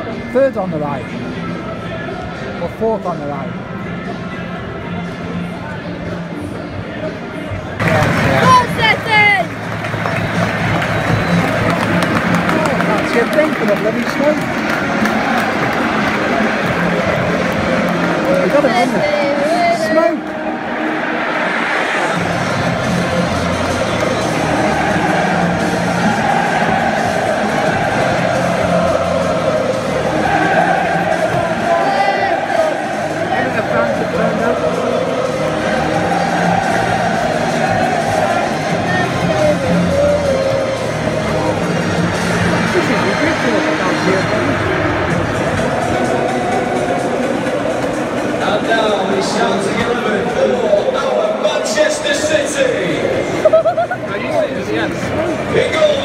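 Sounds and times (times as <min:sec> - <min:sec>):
loud music over pa: 0:00.0 - 0:56.0
stadium crowd singing and cheering: 0:00.0 - 0:56.0.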